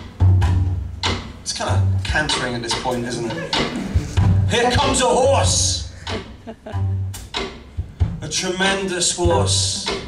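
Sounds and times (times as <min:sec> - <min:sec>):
jazz trio playing: 0:00.0 - 0:10.0
low bass notes: 0:00.0 - 0:10.0.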